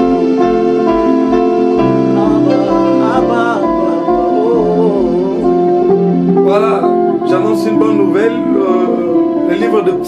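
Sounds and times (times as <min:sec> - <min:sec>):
electric guitar chords: 0:00.0 - 0:10.0
keyboard chords: 0:00.0 - 0:10.0
man singing: 0:02.1 - 0:10.0.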